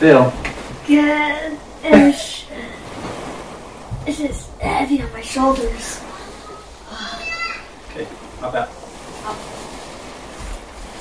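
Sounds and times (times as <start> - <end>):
steady low hiss: 0.0 - 11.0
soft low bump: 3.0 - 6.0.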